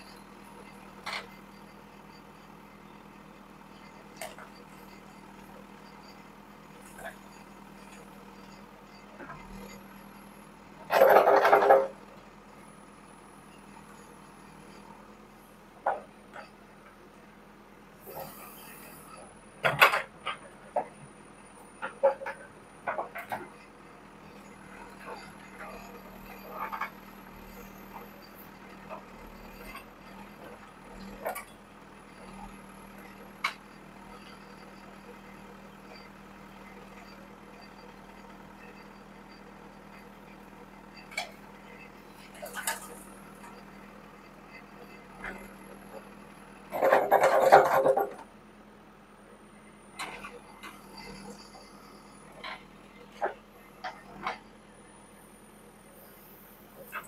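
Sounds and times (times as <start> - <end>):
diesel engine humming: 0.0 - 57.0.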